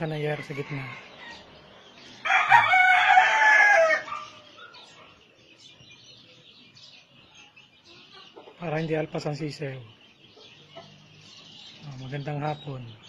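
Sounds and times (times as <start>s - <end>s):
chickens clucking and chirping: 0.0s - 13.0s
rooster crowing: 0.3s - 1.4s, 2.2s - 4.3s.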